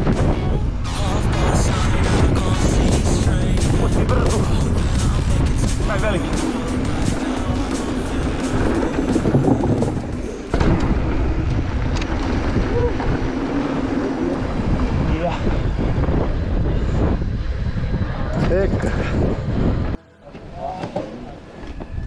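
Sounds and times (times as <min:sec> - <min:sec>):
bike tyres rumbling over dirt: 0:00.0 - 0:19.9
wind buffeting microphone: 0:00.0 - 0:20.6.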